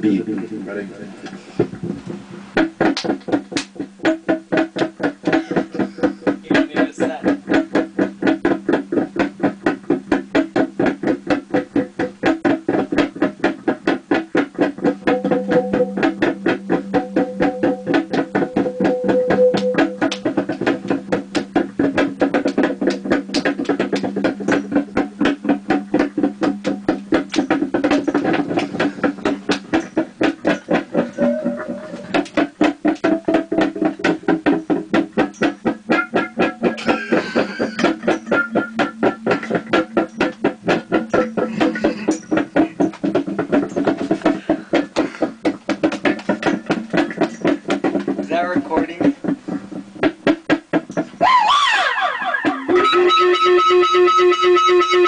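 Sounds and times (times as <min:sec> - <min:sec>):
machine beat with pitched backing: 0:01.6 - 0:55.0.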